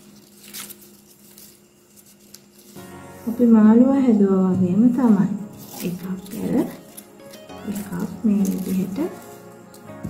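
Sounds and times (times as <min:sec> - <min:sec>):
paper strips rustling: 0:00.0 - 0:03.4, 0:05.0 - 0:10.0
quiet background music: 0:00.0 - 0:10.0.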